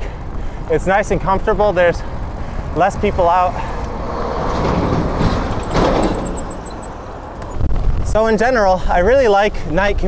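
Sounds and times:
road traffic: 0.0 - 9.8
wind rushing over microphone: 0.2 - 9.1.

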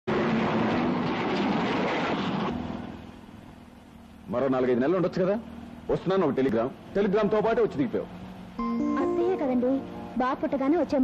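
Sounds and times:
car and road traffic noise: 0.0 - 11.0.

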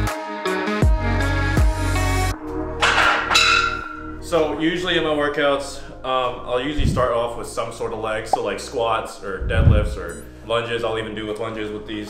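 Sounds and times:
man speaking: 6.1 - 11.0.

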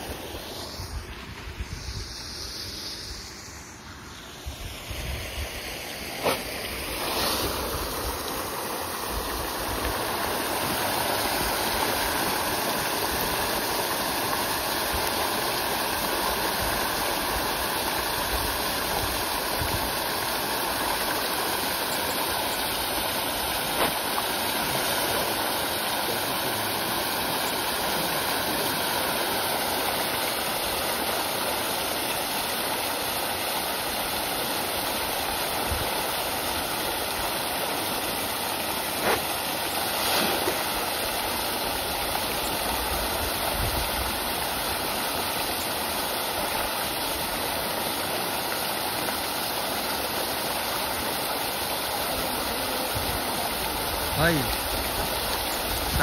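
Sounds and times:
water jet pouring into pond: 0.0 - 56.0
sharp splashes or knocks: 23.6 - 25.5, 39.9 - 40.9.

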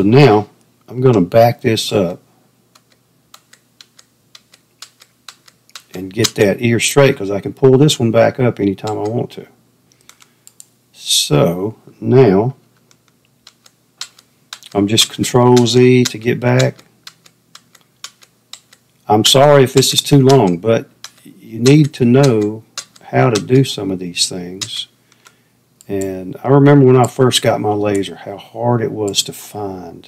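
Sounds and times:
computer keyboard key taps: 2.8 - 6.4
keyboard keys clicking: 2.8 - 6.4, 8.8 - 9.2, 13.4 - 18.8, 19.7 - 23.7.

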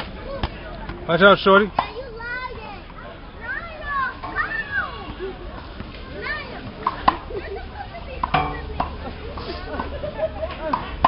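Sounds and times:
people and children calling out: 2.0 - 9.6.

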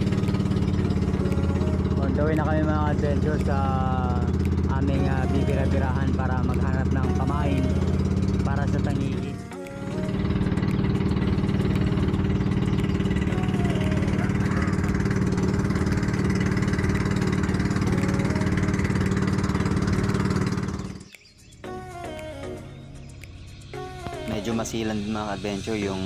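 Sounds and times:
boat engine droning: 0.0 - 26.0.

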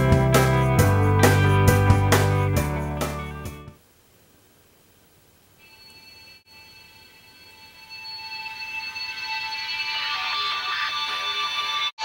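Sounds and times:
smartphone ringtone chord: 5.6 - 10.6.

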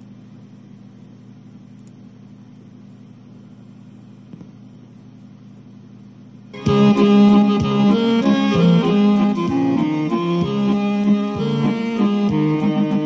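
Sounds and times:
tape hiss: 0.0 - 13.0.

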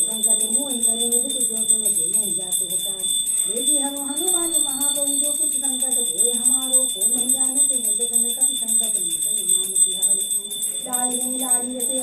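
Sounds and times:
bell rung rapidly: 0.0 - 12.0
voice chanting a hymn: 0.0 - 12.0.

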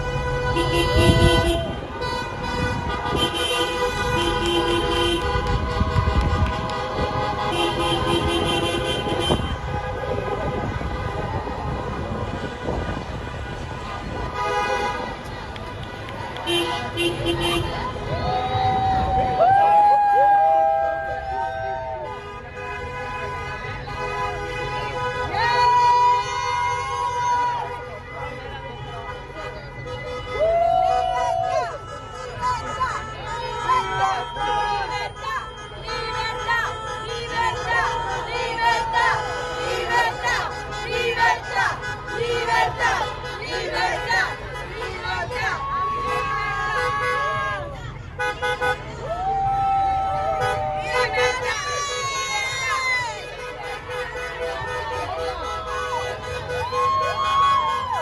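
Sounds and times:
horns blasting: 0.0 - 19.4, 20.6 - 58.0
crowd noise: 0.0 - 58.0.

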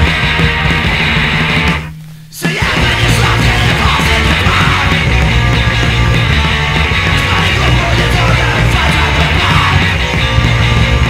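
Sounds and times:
hardcore punk song: 0.0 - 11.0.

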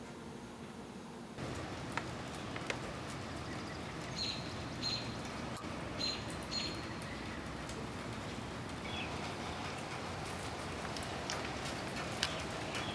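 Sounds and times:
outdoor hiss: 0.0 - 12.9
small bird chirping: 2.1 - 7.6.

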